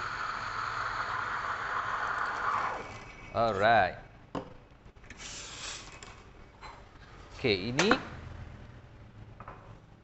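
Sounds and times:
steam wand hissing in milk: 0.0 - 3.4.

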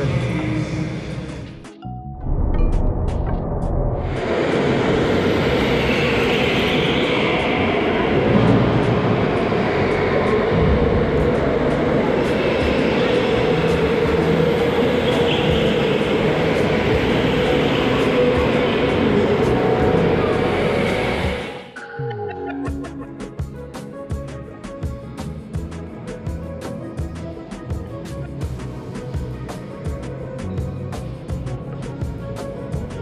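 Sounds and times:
go-karts rushing hum: 4.0 - 21.8.

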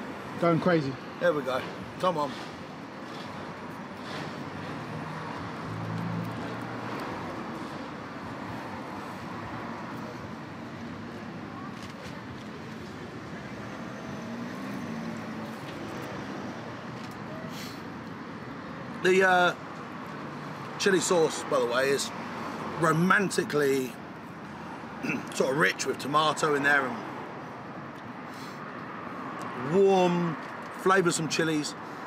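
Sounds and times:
road traffic noise: 0.0 - 32.0.

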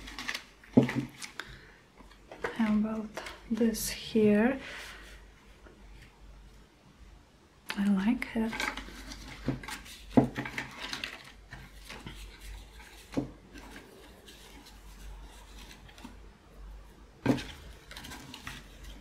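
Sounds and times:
paper rustling by hand: 0.0 - 1.4, 8.5 - 16.2, 17.2 - 19.0.

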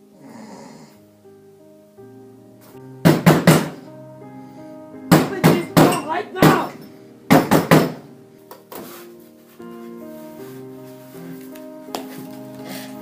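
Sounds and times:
soft background music: 0.0 - 13.0
heavy pounding on a door: 3.0 - 3.8, 5.1 - 8.0.

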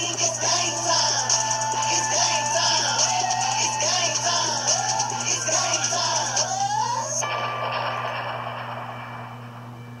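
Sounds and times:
low hum: 0.0 - 10.0.

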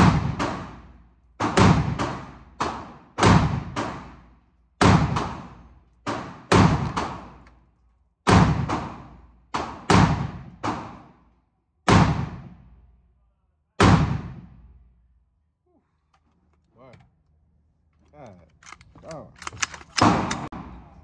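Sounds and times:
pistol shots echoing indoors: 0.0 - 7.6, 8.2 - 13.0, 13.8 - 14.9.

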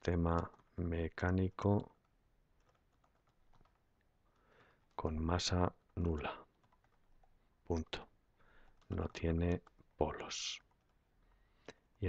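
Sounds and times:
faint keyboard typing: 0.0 - 12.0.

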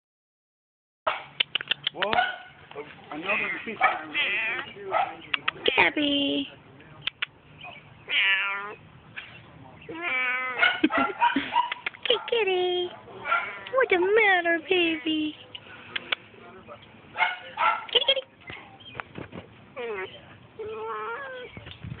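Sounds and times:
cat meowing: 8.1 - 8.8, 9.9 - 10.6.

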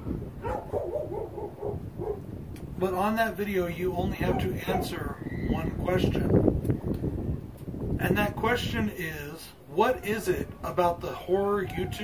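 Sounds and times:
wind rumble on microphone: 0.0 - 12.0
dog crying: 0.4 - 2.2, 4.2 - 5.0, 11.1 - 12.0.

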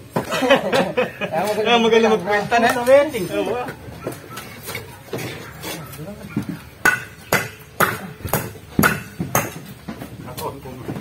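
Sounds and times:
hammer strikes with metallic ring: 6.8 - 9.7.

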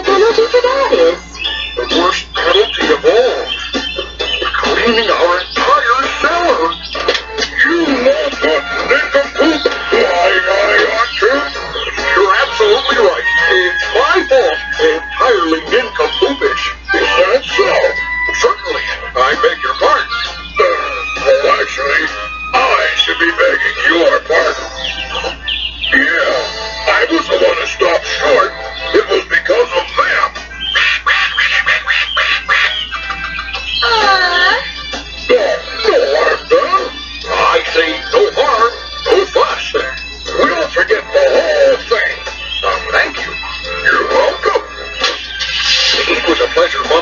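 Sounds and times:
cartoon music from tv speaker: 0.0 - 47.0.

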